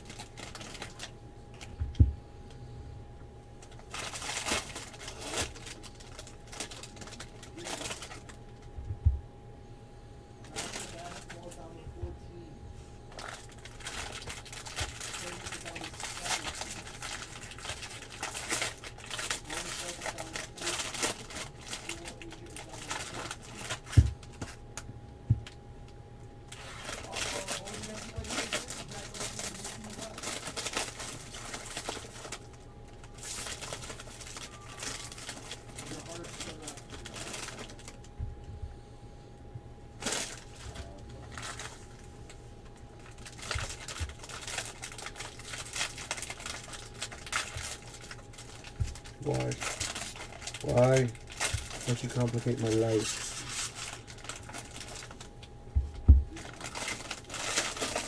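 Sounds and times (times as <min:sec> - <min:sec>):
card packs torn open: 0:00.0 - 0:01.7, 0:03.6 - 0:08.6, 0:10.4 - 0:11.6, 0:13.1 - 0:24.6, 0:26.5 - 0:38.0, 0:40.0 - 0:42.1, 0:42.7 - 0:55.4, 0:56.3 - 0:58.0
foil wrappers crinkling: 0:00.0 - 0:02.0, 0:03.6 - 0:08.8, 0:10.4 - 0:11.8, 0:13.0 - 0:25.6, 0:26.5 - 0:38.1, 0:40.0 - 0:58.0.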